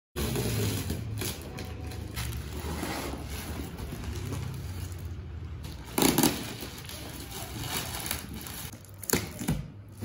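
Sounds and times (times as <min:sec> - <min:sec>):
plastic wrapping crinkling: 0:00.2 - 0:09.4.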